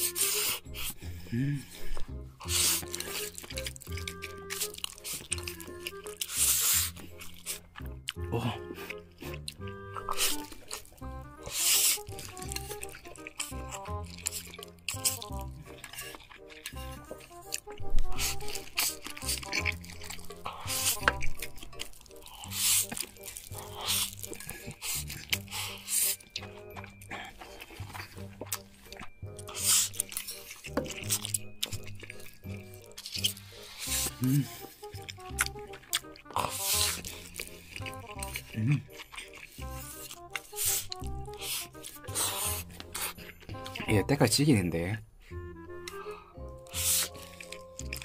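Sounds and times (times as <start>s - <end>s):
person slurping noodles: 0.0s - 28.6s, 29.4s - 31.4s, 32.1s - 43.7s, 46.6s - 48.0s
background music: 0.0s - 48.0s.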